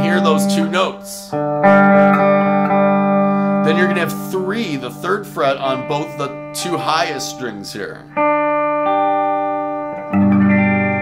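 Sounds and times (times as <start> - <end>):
electric guitar picking chord notes: 0.0 - 11.0.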